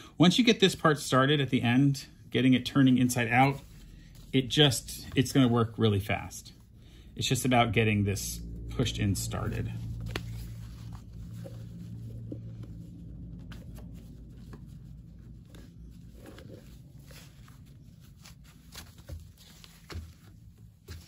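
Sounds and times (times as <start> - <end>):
low steady hum: 0.0 - 21.0
fabric rustling on a wooden table: 9.7 - 21.0.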